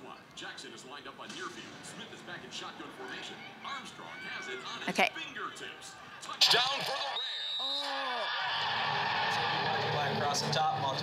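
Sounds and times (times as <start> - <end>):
crowd rushing ambience: 0.0 - 7.6, 8.2 - 11.0.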